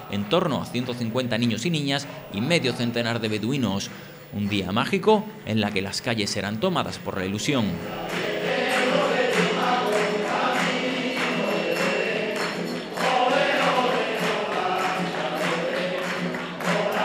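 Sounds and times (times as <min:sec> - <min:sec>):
men singing in chorus: 0:07.8 - 0:17.0
strummed guitars: 0:07.8 - 0:17.0.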